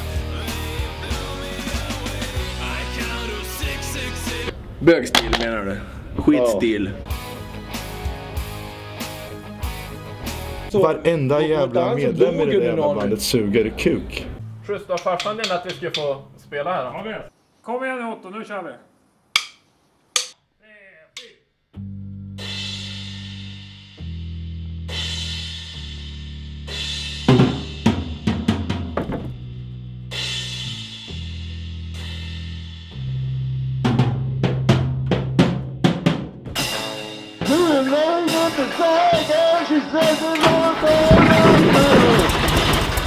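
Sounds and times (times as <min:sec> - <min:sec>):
drumstick clicks: 0:15.0 - 0:16.1, 0:19.4 - 0:19.6, 0:20.2 - 0:20.4
metal band playing: 0:36.6 - 0:43.0.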